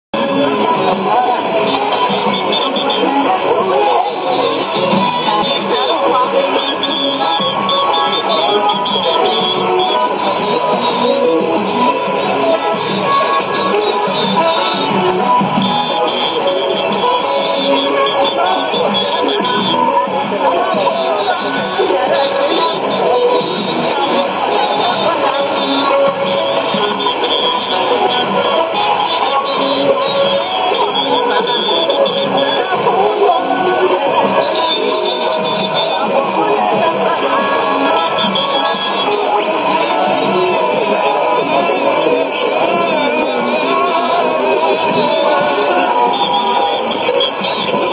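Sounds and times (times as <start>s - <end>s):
music on am radio: 0.1s - 47.9s.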